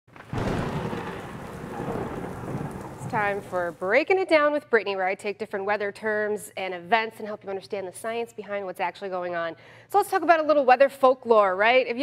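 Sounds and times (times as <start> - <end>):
thunder rumbling: 0.1 - 4.1
rain hiss: 0.2 - 4.0.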